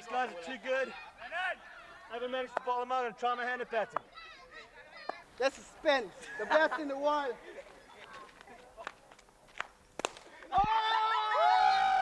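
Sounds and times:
people shouting excitedly: 10.5s - 12.0s.

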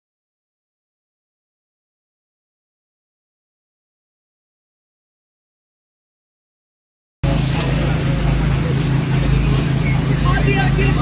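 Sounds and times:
faint voices: 7.2s - 11.0s
truck engine idling: 7.2s - 11.0s.

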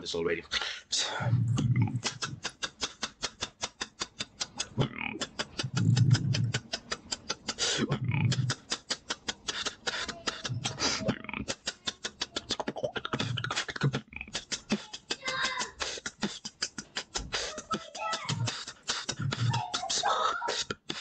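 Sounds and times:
beatboxed deep bass notes: 1.1s - 21.0s
beatboxed hi-hat clicks: 1.6s - 21.0s.

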